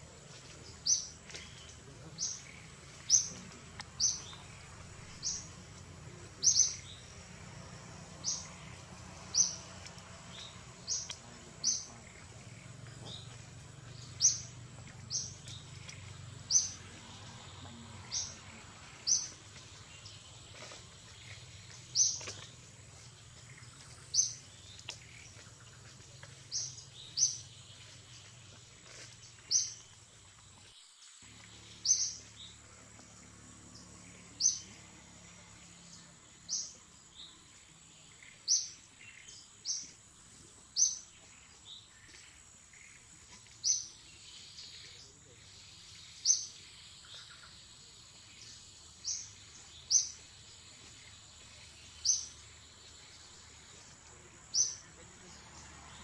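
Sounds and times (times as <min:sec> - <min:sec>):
bird chirping: 0:00.0 - 0:56.0
faint background noise: 0:00.0 - 0:56.0.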